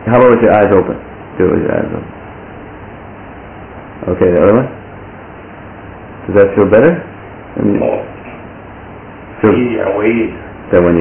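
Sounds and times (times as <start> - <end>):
recording hiss: 0.0 - 11.0.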